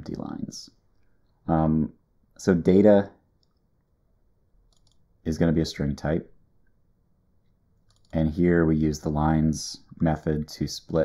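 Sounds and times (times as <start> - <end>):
faint computer mouse clicks: 3.4 - 3.7, 4.7 - 5.0, 7.4 - 8.2.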